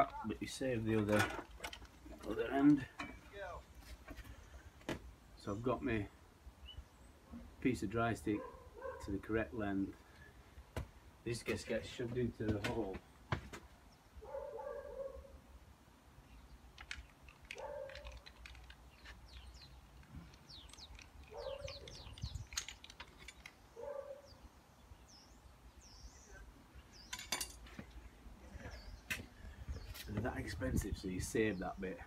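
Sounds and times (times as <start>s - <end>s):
bird chirps: 18.8s - 27.3s.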